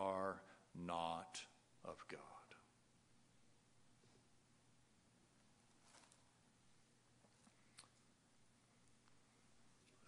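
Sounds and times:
man speaking quietly: 0:00.0 - 0:02.8.

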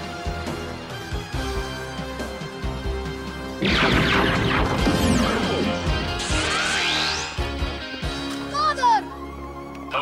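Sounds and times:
dramatic background music: 0:00.0 - 0:10.0
cartoon blaster shot and crash: 0:03.6 - 0:07.4
rising electronic sweep: 0:03.6 - 0:08.0.

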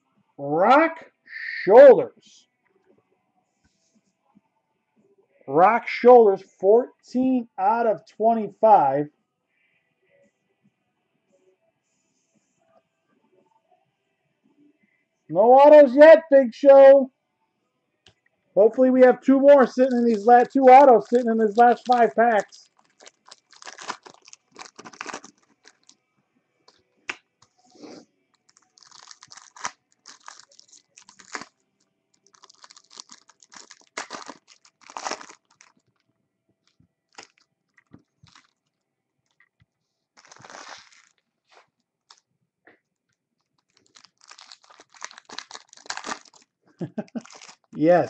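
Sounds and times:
foil wrappers crinkling: 0:19.6 - 0:26.0, 0:28.3 - 0:36.0, 0:37.1 - 0:38.8, 0:40.2 - 0:42.2, 0:43.4 - 0:47.8.

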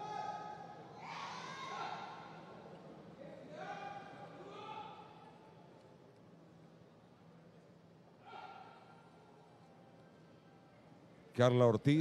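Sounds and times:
people shouting high-pitched: 0:00.0 - 0:02.3.

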